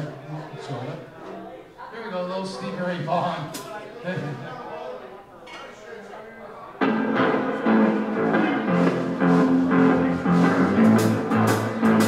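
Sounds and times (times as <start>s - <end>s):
live rock band playing: 6.8s - 12.0s
low bass notes: 6.8s - 12.0s.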